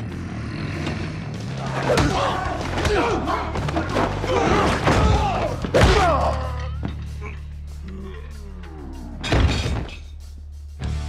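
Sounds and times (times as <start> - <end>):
droning music score: 0.0 - 11.0.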